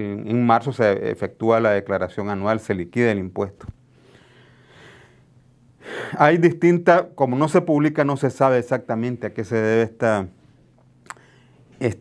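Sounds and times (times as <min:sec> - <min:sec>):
man breathing in softly: 0:03.9 - 0:06.2, 0:11.2 - 0:11.7.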